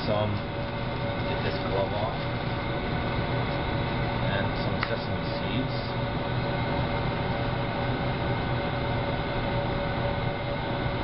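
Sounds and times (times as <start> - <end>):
kitchen machinery hum and rumble: 0.0 - 11.0.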